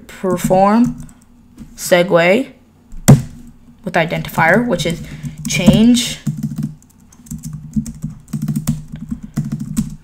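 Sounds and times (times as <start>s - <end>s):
computer keyboard typing: 5.2s - 10.0s.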